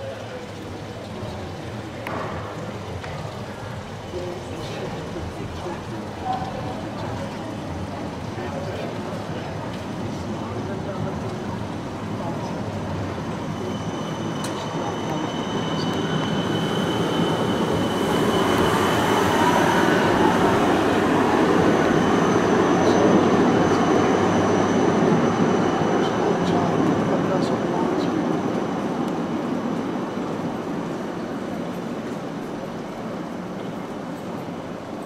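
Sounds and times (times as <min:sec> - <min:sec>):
tram rumbling on rails: 0:00.0 - 0:35.0
thin high whine: 0:13.2 - 0:28.1.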